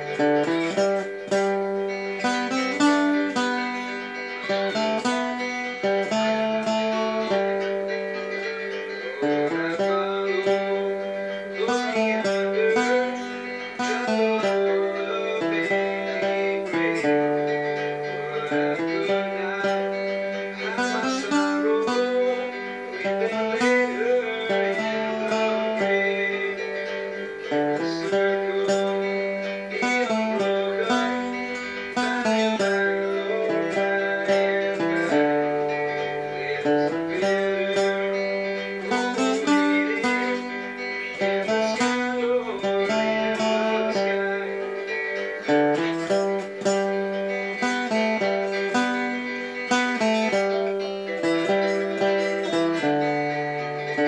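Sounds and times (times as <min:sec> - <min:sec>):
guitar strumming: 0:00.0 - 0:54.0
instrumental backing track: 0:00.0 - 0:54.0.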